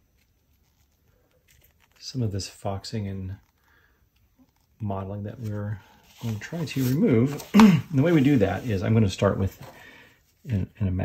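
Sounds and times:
paper rustling: 0:00.0 - 0:02.3, 0:05.3 - 0:09.8.

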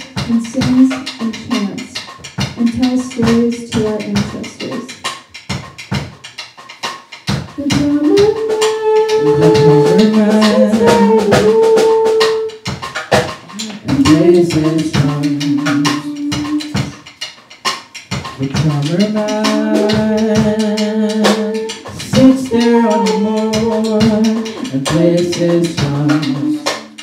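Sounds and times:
percussive hits: 0:00.0 - 0:27.0
small ensemble playing live: 0:00.0 - 0:27.0
long held notes: 0:07.6 - 0:12.8, 0:13.4 - 0:17.0, 0:18.4 - 0:27.0.

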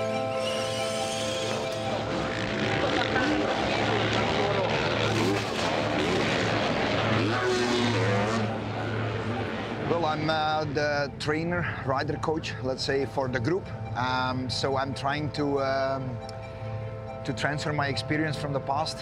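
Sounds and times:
low musical drone: 0:00.0 - 0:19.0
motocross engines revving: 0:01.2 - 0:10.0.

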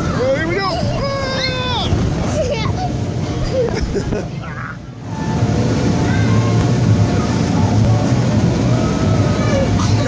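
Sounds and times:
faint music: 0:00.0 - 0:10.0
rush down inflatable slide: 0:00.0 - 0:10.0.

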